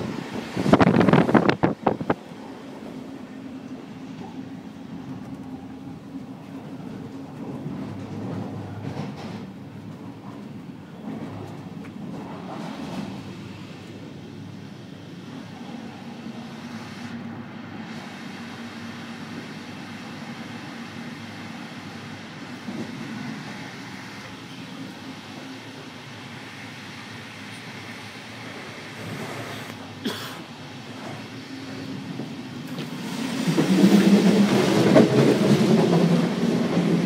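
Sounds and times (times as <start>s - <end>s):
train wheels rumbling on rails: 0.0s - 37.0s.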